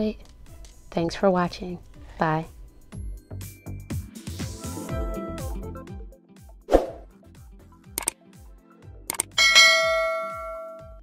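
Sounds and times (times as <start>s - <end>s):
background music with low beat: 0.0s - 11.0s
sharp click effects: 8.0s - 8.2s, 9.1s - 9.4s
bell-like ding: 9.4s - 11.0s.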